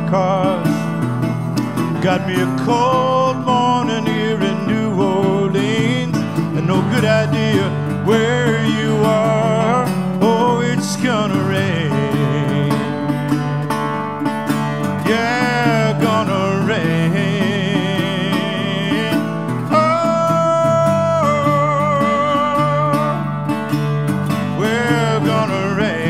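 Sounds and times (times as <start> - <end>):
resonator guitar plucked: 0.0 - 26.0.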